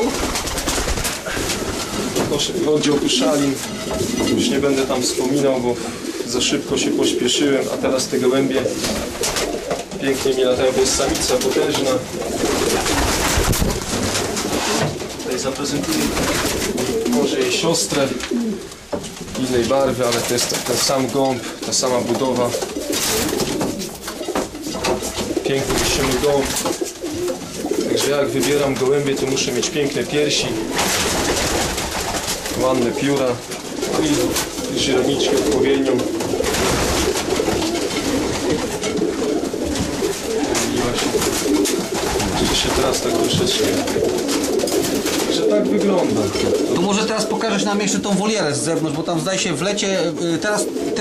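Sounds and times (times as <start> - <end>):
pigeons cooing: 0.0 - 48.9, 49.8 - 51.0
rustling: 0.0 - 49.7.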